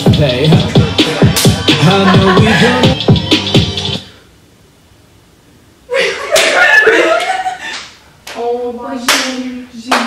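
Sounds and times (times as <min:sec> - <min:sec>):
hand claps: 0:09.1 - 0:10.0.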